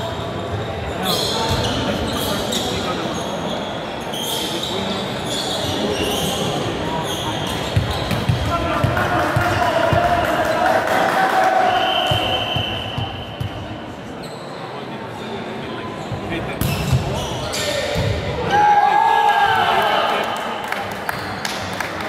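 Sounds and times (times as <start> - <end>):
players' voices: 0.1 - 22.0
ball bouncing on hall floor: 7.7 - 10.2.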